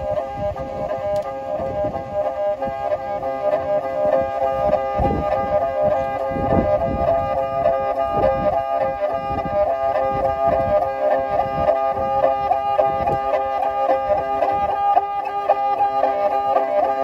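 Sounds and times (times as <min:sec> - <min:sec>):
bowed fiddle high note: 0:00.0 - 0:17.0
grainy low bow rasp: 0:00.0 - 0:17.0.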